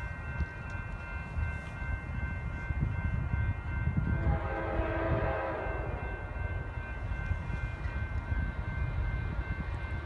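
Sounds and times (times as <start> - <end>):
low rumble of train: 0.0 - 10.0
locomotive horn: 4.0 - 6.2.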